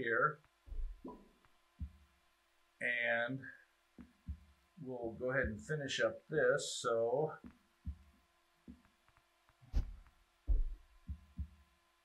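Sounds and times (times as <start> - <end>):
faint steady hum: 0.0 - 12.0
microphone handling thumps: 0.7 - 2.1, 4.0 - 4.6, 5.4 - 5.7, 7.4 - 8.8, 9.6 - 11.6.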